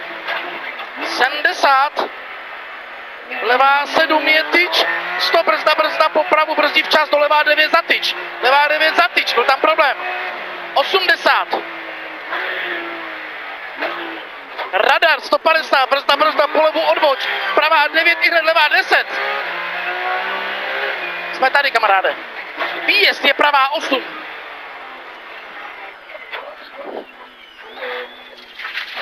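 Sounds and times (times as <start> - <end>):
road and tyre noise: 0.0 - 29.0
car engine from inside cabin: 1.6 - 28.4.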